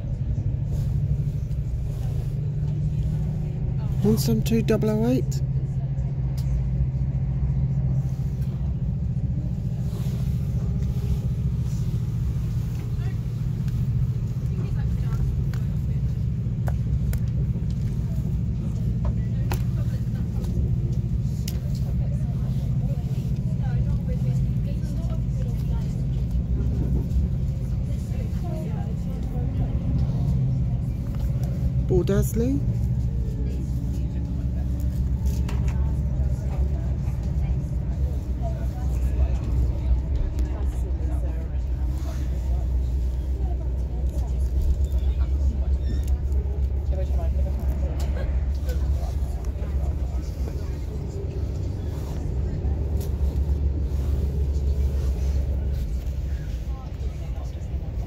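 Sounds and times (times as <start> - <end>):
train rumbling at speed: 0.0 - 58.0.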